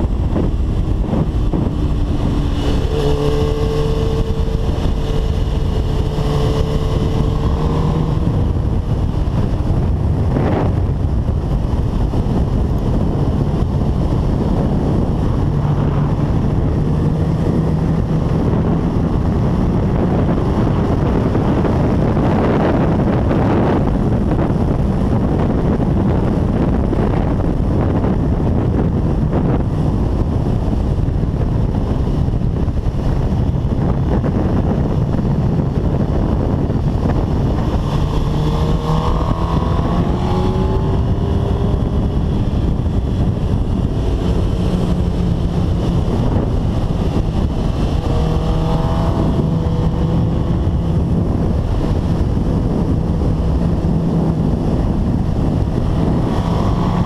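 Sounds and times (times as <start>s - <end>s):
heavy wind noise on microphone: 0.0s - 57.0s
motorcycle engine accelerating: 0.0s - 57.0s.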